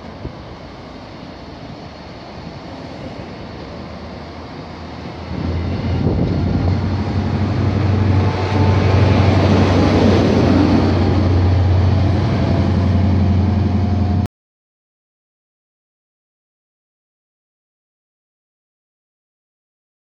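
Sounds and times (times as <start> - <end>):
train running past: 0.0 - 14.3
diesel engine drone: 2.8 - 14.3.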